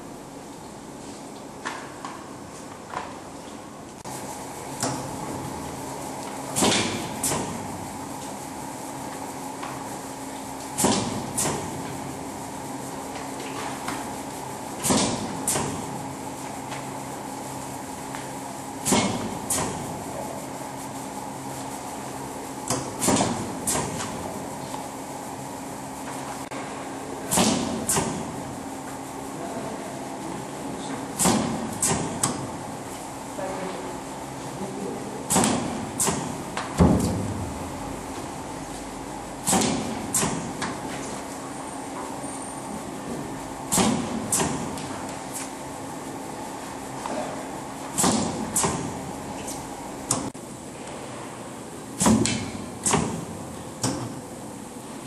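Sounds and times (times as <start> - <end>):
laminating machine humming: 4.1 - 55.0.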